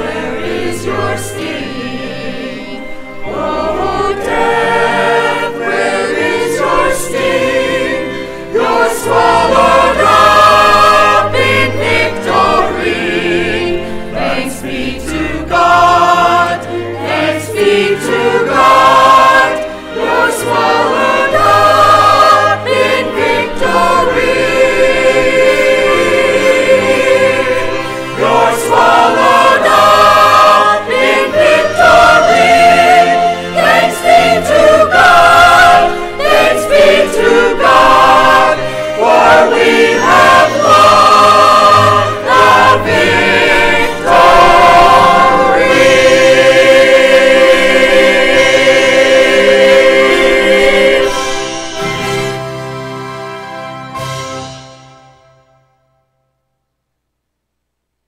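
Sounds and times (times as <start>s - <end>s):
choir singing in harmony: 0.0s - 55.0s
musical accompaniment: 0.0s - 56.8s.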